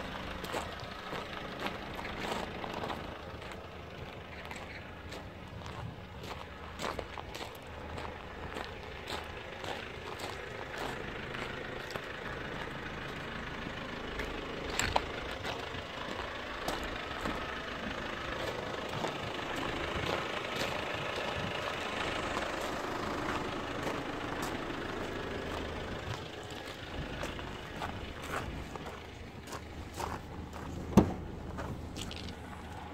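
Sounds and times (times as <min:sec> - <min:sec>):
diesel engine idling: 0:00.0 - 0:32.9.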